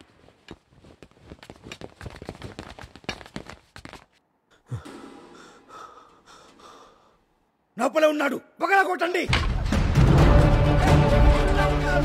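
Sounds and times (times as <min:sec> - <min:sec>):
person breathing and gasping: 0:04.5 - 0:07.3.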